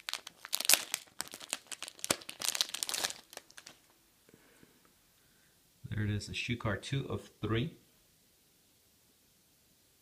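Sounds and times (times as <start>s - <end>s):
plastic sleeve crinkling: 0.0s - 4.0s.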